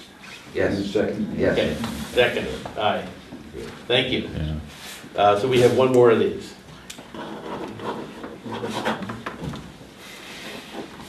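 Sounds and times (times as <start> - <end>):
paper rubbing on tabletop: 7.1 - 9.2.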